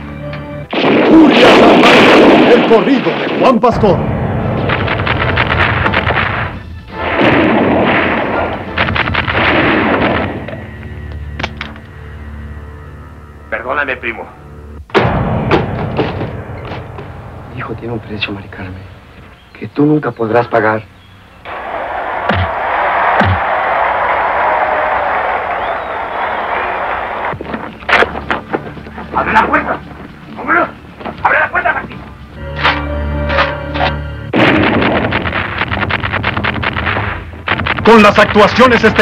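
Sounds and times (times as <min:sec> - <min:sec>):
gunfire: 0:00.7 - 0:10.6, 0:14.9 - 0:17.5, 0:34.4 - 0:38.5
punch sound effects: 0:03.8 - 0:10.5, 0:14.9 - 0:17.5, 0:22.2 - 0:23.4.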